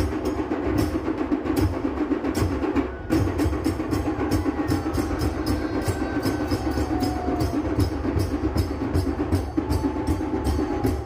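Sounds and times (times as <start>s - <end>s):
rhythmic drumming: 0.0s - 11.0s.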